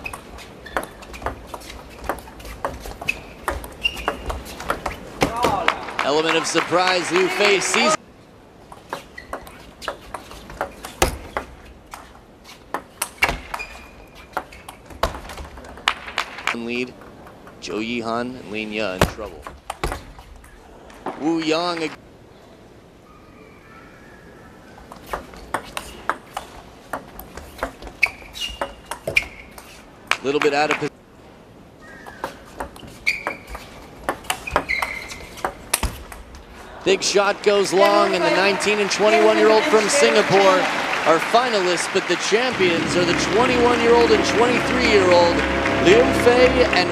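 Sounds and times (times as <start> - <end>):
shoes squeaking on floor: 0.0 - 5.2, 8.8 - 15.6, 24.8 - 29.9, 31.8 - 36.1.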